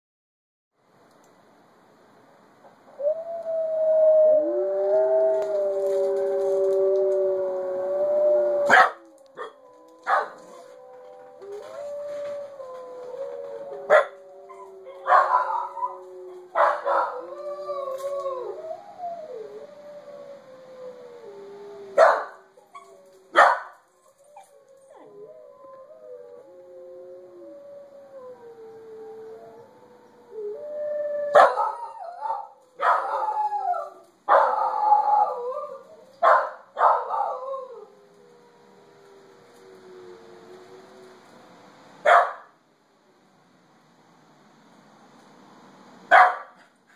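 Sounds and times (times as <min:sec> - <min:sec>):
wolves howling: 0:03.0 - 0:41.6
dog barking sharply: 0:46.1 - 0:46.6.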